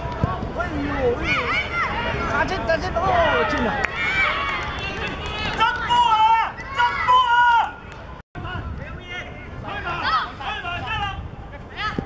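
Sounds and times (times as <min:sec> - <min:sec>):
young voices shouting: 0:01.0 - 0:07.8.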